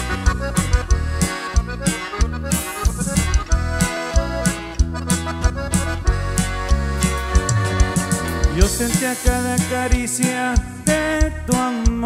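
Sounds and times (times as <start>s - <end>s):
bajo sexto strumming: 0.0s - 12.0s
button accordion: 0.0s - 12.0s
drum kit beat: 0.0s - 12.0s
electric bass: 0.0s - 12.0s.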